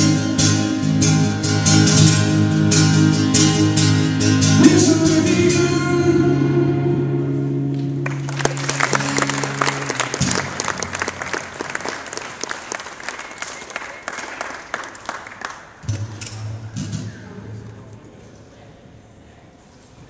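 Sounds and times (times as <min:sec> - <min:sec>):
acoustic guitar chord ringing: 0:00.0 - 0:11.6
audience clapping: 0:07.7 - 0:15.9.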